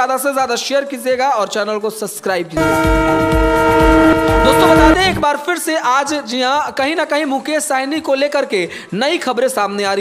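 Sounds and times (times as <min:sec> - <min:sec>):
held chord over pulsing bass: 0:02.6 - 0:05.2.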